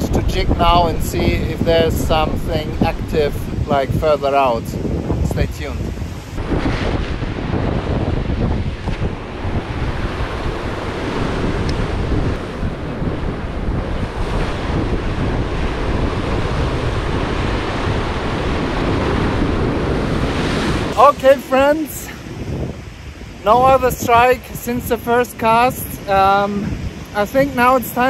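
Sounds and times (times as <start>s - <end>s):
surf breaking over rocks: 0.0s - 28.0s
wind buffeting microphone: 0.0s - 28.0s.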